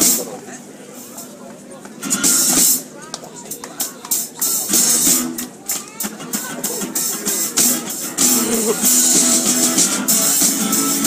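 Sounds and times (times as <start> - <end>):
drum and cymbal hits: 2.1 - 2.9, 3.8 - 11.0.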